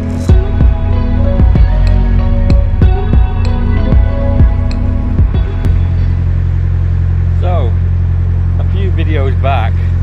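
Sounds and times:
background music: 0.0s - 8.8s
boat diesel engine running: 0.0s - 10.0s.

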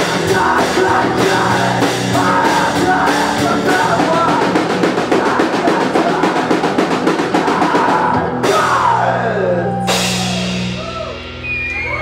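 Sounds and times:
drum roll: 0.0s - 12.0s
rock band playing: 0.0s - 12.0s.

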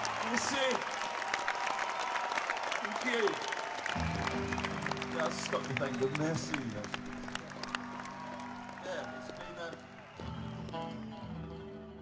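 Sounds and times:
shouts from crowd: 0.0s - 4.7s, 7.4s - 11.0s
crowd cheering and clapping: 0.0s - 12.0s.

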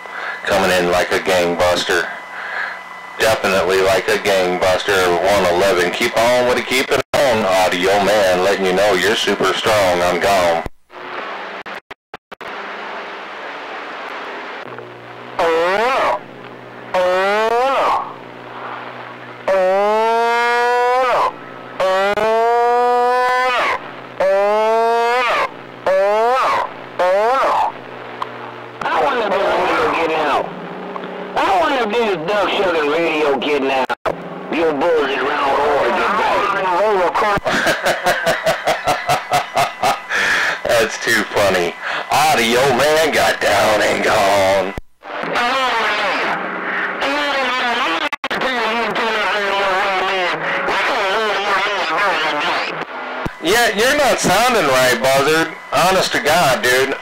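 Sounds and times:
radio swooping tones: 0.0s - 7.0s, 16.8s - 27.9s, 38.2s - 57.0s
garbled radio voices: 0.0s - 11.2s, 14.7s - 30.5s, 31.3s - 57.0s.

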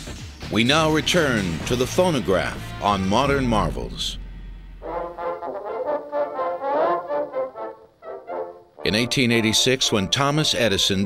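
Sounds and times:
old phonograph brass band music: 1.1s - 4.1s, 4.8s - 11.0s.

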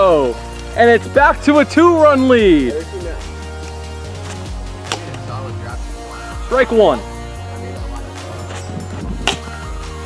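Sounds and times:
background music with steady beat: 0.0s - 10.0s
plastic ball hitting plywood: 8.9s - 9.5s.

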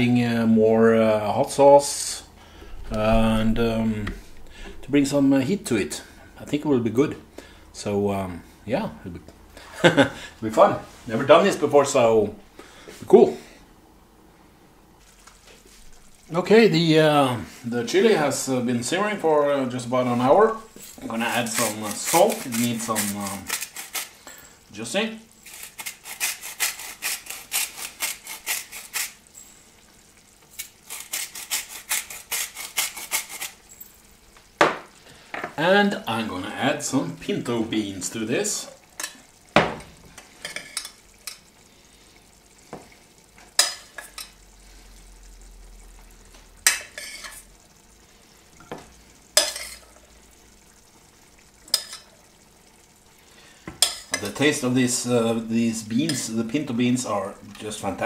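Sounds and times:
salt mill grinding: 21.0s - 24.2s, 25.4s - 29.2s, 30.6s - 33.7s.

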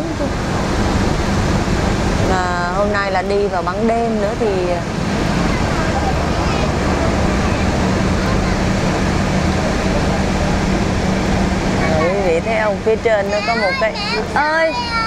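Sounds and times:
ferry engine droning: 0.0s - 15.0s
voices: 2.1s - 15.0s.

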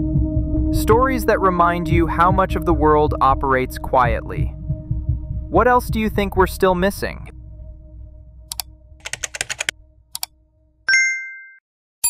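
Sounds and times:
keyboard key clicks: 8.5s - 10.3s
bright ding: 10.9s - 11.6s.

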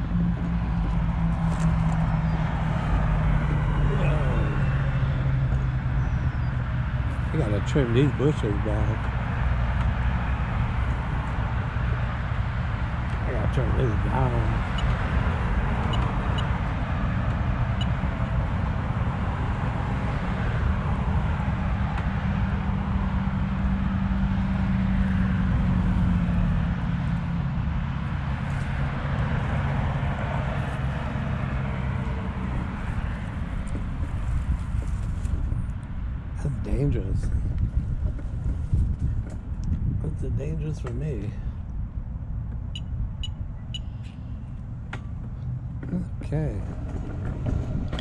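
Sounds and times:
cars passing on busy road: 0.0s - 48.0s.

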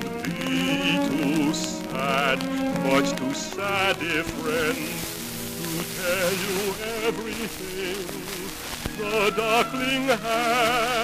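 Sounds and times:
sustained accompaniment: 0.0s - 11.0s
trained singer with vibrato: 0.0s - 11.0s.

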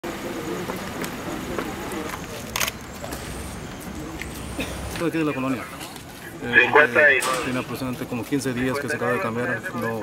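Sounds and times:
steady traffic noise: 0.0s - 10.0s.

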